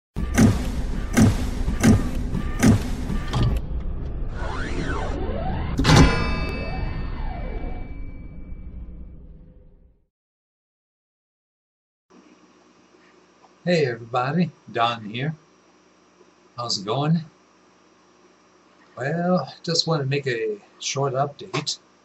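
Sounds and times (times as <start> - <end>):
heavy hits: 0.2 - 3.6
big ringing impact: 5.8 - 9.2.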